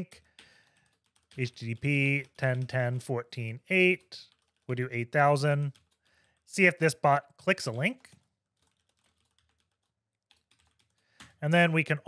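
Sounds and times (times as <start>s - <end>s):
computer keyboard typing: 0.0s - 11.4s.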